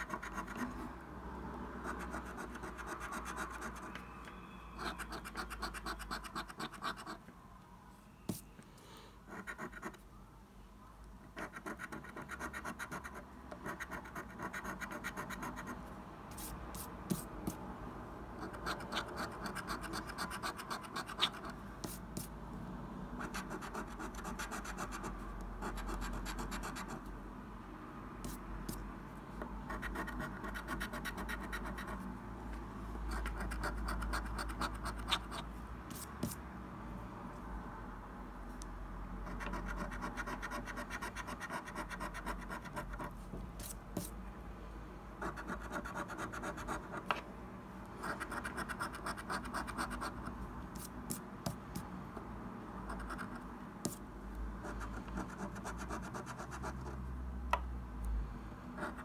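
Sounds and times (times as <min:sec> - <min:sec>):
coin scratching scratch card: 0:04.8 - 0:07.2, 0:18.4 - 0:22.3, 0:23.2 - 0:27.0, 0:33.2 - 0:36.4.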